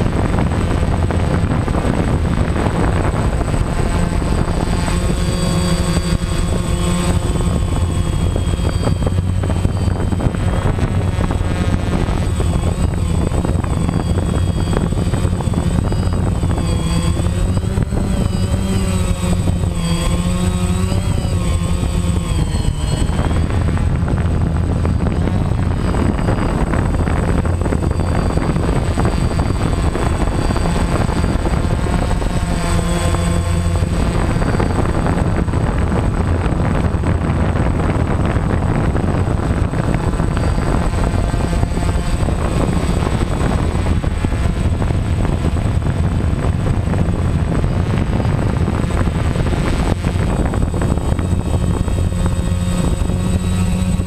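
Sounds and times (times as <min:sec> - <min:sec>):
quadcopter propellers and motors: 0:00.0 - 0:54.0.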